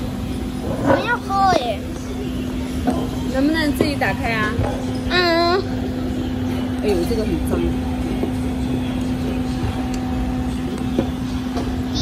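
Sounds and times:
droning hum: 0.0 - 12.0.

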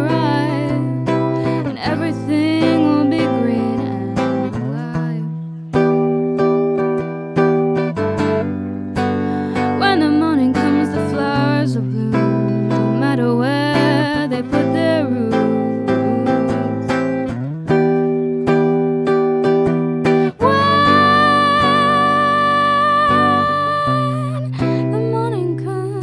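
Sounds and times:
young woman singing: 0.0 - 6.0, 9.2 - 17.1, 20.2 - 26.0
electric guitar strummed chords: 0.0 - 26.0.

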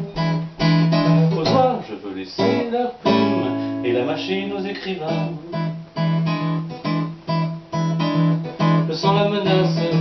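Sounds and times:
acoustic guitar strumming blues chords: 0.0 - 10.0.

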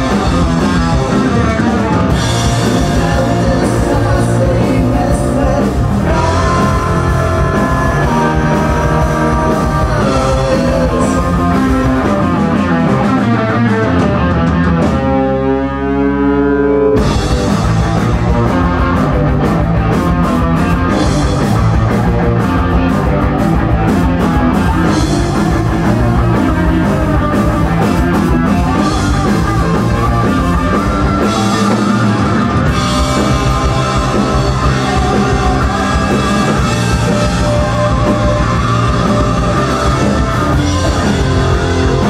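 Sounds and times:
psychedelic rock band playing: 0.0 - 42.0.

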